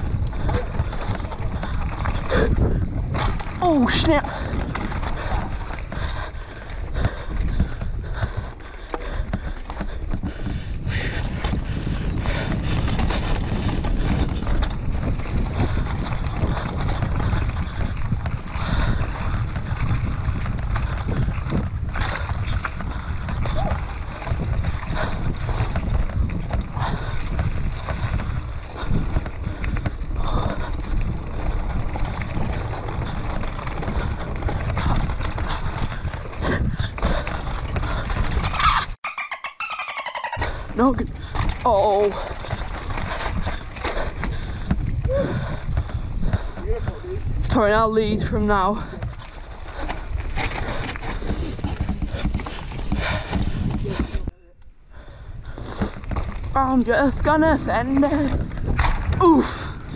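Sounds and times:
bike knocks and rattles: 0.0s - 39.0s, 40.4s - 54.3s, 55.5s - 59.9s
wind buffeting microphone: 0.0s - 39.0s, 40.4s - 59.9s
bike tyre rumble: 0.0s - 59.9s.

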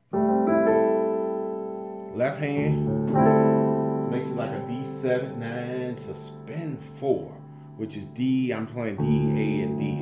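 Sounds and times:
sustained keyboard piano chord: 0.0s - 10.0s.

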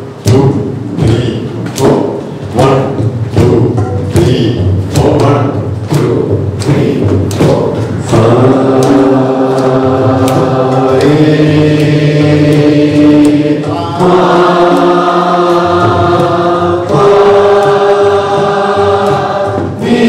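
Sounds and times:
thudding beat: 0.0s - 20.0s
group of voices chanting: 0.3s - 20.0s.

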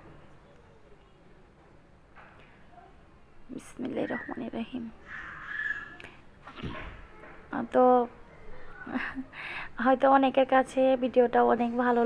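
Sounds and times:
harsh animal call: 5.0s - 6.0s.

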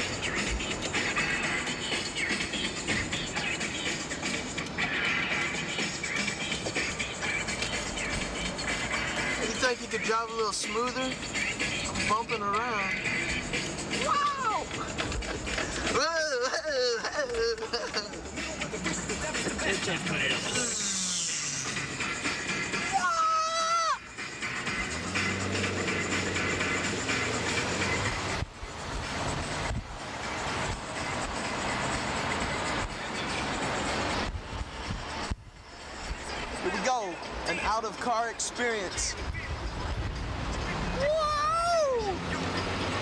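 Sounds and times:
moving car interior noise: 0.0s - 43.0s
people whooping and yelling: 22.9s - 24.0s, 40.9s - 42.2s.

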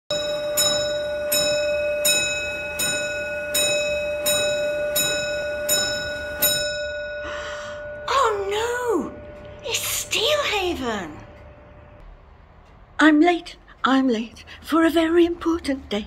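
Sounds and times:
bell-like ring: 0.1s - 11.8s.

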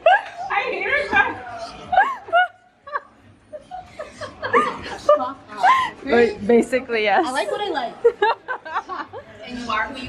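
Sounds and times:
women talking: 0.2s - 1.5s, 9.4s - 10.0s.

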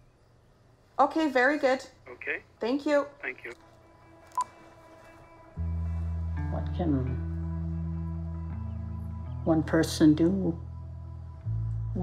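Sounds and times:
low music drone: 3.8s - 12.0s.

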